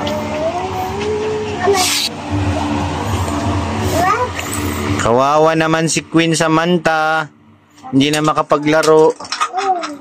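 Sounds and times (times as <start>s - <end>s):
motor engine running: 0.0s - 6.2s.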